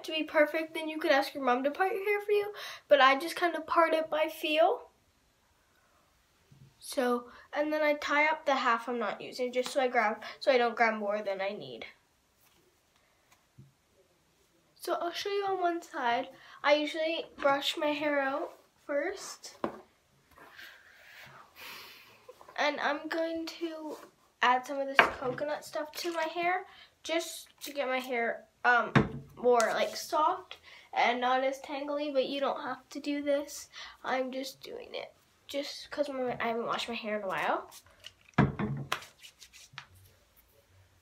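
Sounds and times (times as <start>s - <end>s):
hands rubbing hair: 38.9s - 40.5s.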